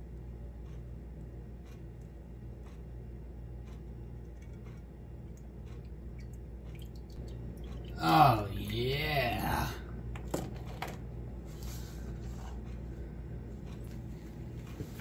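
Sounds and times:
steady low hum: 0.0s - 15.0s
small liquid sounds: 5.8s - 8.0s.

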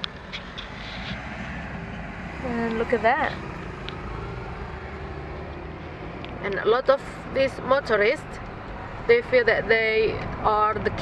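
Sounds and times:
car engine from inside cabin: 0.0s - 11.0s
traffic rumble: 0.0s - 11.0s.

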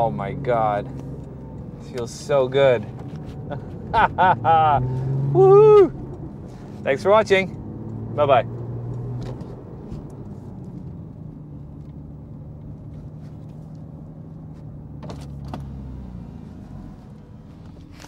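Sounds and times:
car engine running inside cabin: 0.0s - 18.0s.

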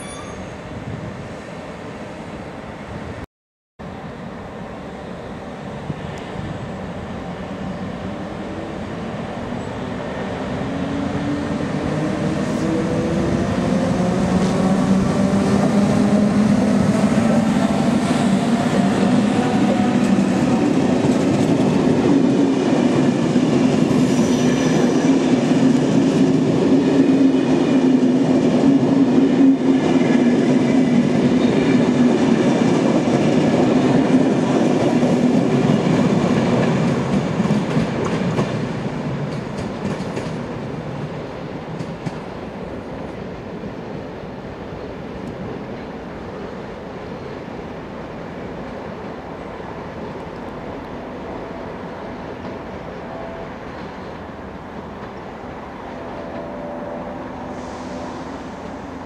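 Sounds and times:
electric locomotive whine: 3.8s - 59.0s
train wheels rolling: 10.4s - 44.0s.

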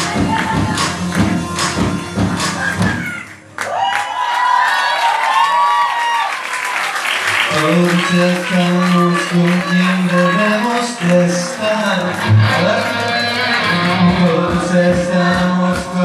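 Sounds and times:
hard drum hits: 0.0s - 3.2s
audience clapping and cheering: 0.0s - 16.0s
live rock band playing: 12.1s - 16.0s.

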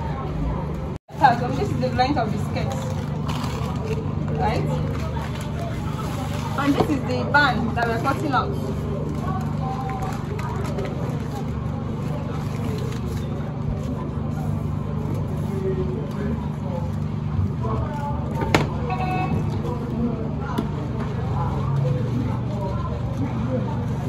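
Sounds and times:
paper being handled: 7.9s - 18.5s.

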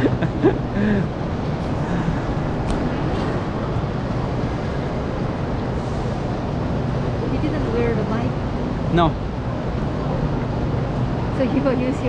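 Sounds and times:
busy railway platform rumble: 0.0s - 12.0s.

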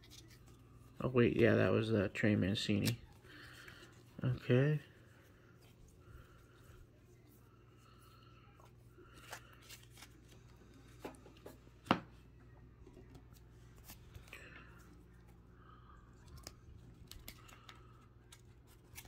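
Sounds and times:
cards rustling: 0.0s - 1.8s, 2.5s - 4.8s, 8.6s - 11.8s, 12.7s - 15.4s, 16.1s - 19.0s
faint low hum: 0.0s - 19.0s.

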